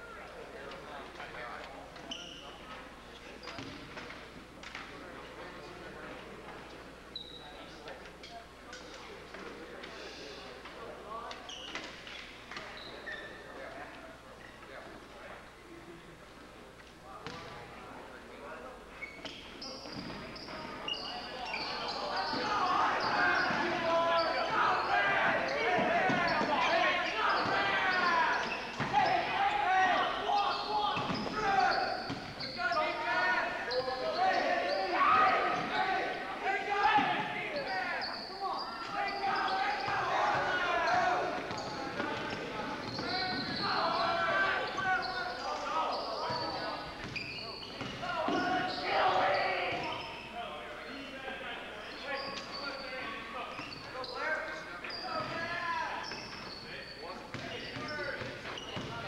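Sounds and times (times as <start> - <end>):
sneakers squeaking on hardwood: 19.0 - 36.0, 36.9 - 50.3, 54.9 - 59.0
people shouting in a gym: 21.3 - 50.4.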